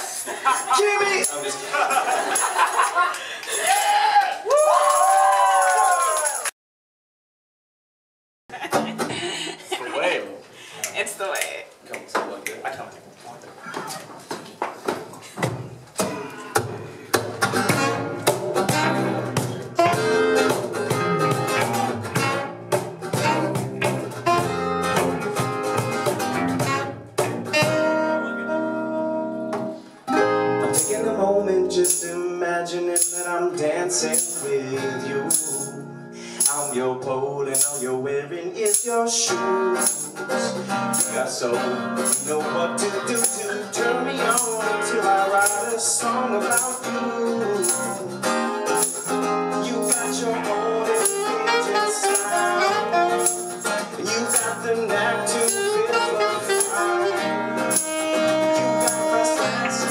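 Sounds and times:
acoustic guitar strumming chords: 16.0s - 59.9s
shaker hits: 30.8s - 31.1s, 31.8s - 32.2s, 33.0s - 33.4s, 39.8s - 40.2s, 40.9s - 41.3s, 42.0s - 42.4s, 43.1s - 43.6s, 44.3s - 44.7s, 45.4s - 45.9s, 46.5s - 46.9s, 47.6s - 50.3s, 50.9s - 51.4s, 53.2s - 54.7s, 57.7s - 58.2s, 58.8s - 59.9s.

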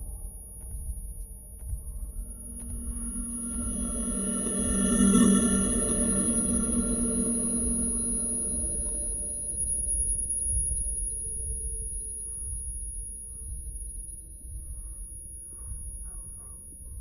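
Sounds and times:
muffled low rumble with throbs: 0.0s - 17.0s
thin high ringing tone: 2.1s - 13.5s.

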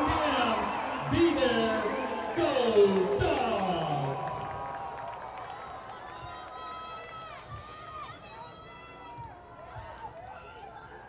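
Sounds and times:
distant crowd shouts and calls: 0.0s - 5.2s.

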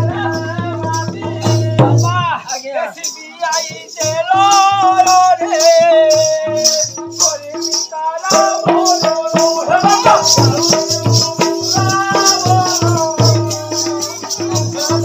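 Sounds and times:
person singing: 0.0s - 15.0s
rhythmic jingling: 0.0s - 15.0s.

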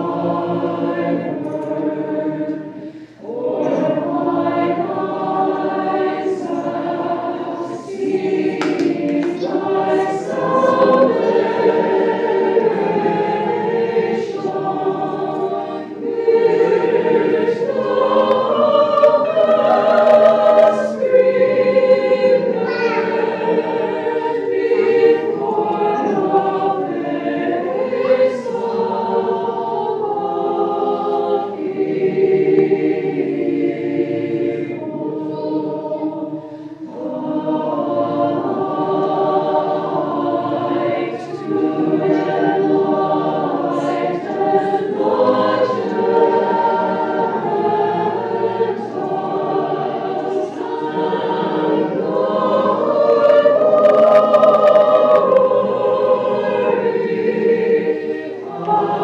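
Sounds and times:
choir chanting unaccompanied: 0.0s - 59.0s.

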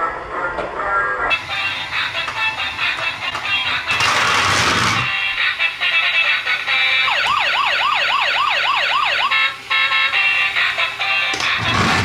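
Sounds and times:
toy siren yelping: 6.0s - 11.3s.

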